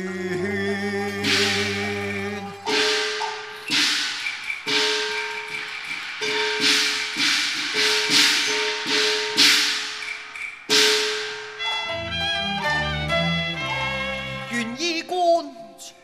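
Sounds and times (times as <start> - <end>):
cymbal crashes: 1.2 - 11.6
gong strikes: 2.6 - 3.9.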